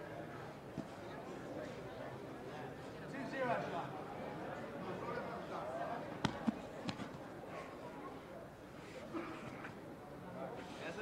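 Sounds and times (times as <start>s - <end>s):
people's voices in a hall: 0.0s - 11.0s.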